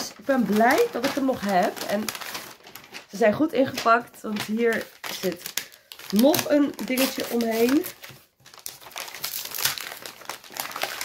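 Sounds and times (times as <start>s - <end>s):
plastic wrapping crinkling: 0.0s - 11.0s.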